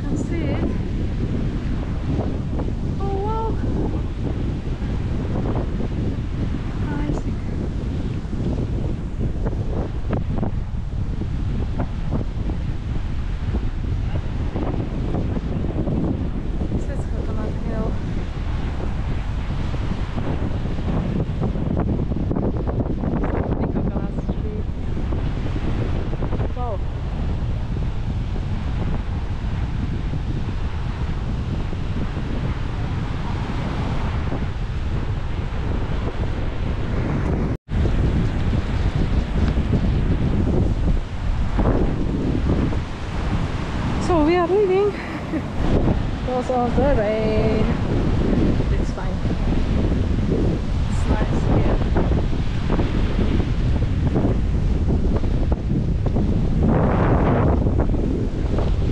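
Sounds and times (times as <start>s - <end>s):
ocean surf: 0.0s - 58.9s
wind buffeting microphone: 0.0s - 58.9s.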